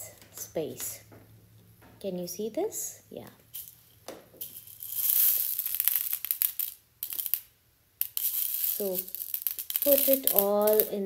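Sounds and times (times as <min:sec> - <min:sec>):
dried beans rattling in glass bowl: 0:04.4 - 0:11.0.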